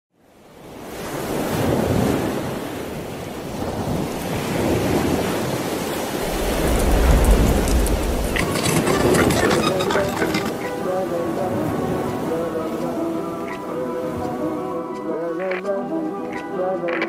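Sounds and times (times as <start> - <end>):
surf breaking on rocks: 1.0 - 12.4
deep low rumble: 6.2 - 9.2.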